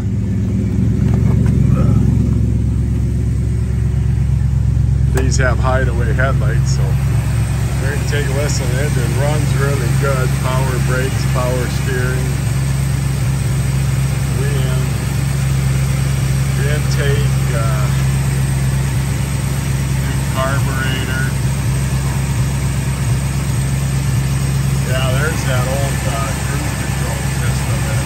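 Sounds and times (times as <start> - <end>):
car engine idling: 0.0 - 28.0.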